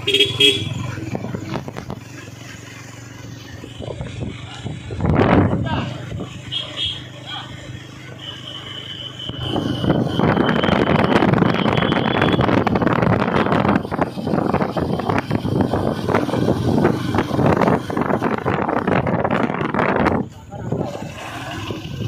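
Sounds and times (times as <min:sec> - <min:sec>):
motorcycle engines running: 0:00.0 - 0:22.0
wind buffeting microphone: 0:03.7 - 0:06.5, 0:09.4 - 0:22.0.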